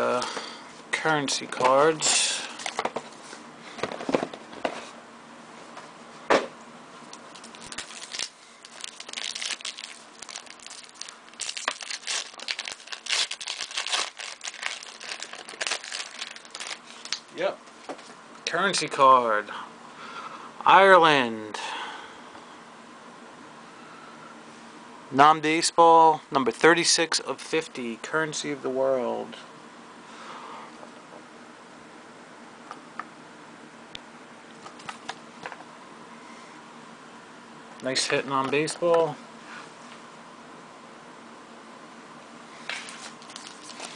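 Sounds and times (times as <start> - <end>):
paper wrapper tearing and crinkling: 7.2 - 17.2, 42.7 - 43.9.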